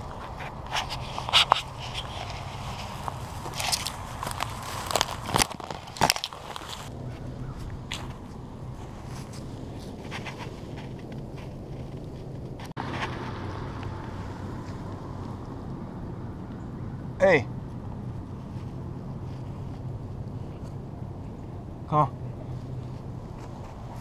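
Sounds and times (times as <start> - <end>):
twigs snapping: 0.0 - 8.4
dry grass crackling underfoot: 0.0 - 24.0.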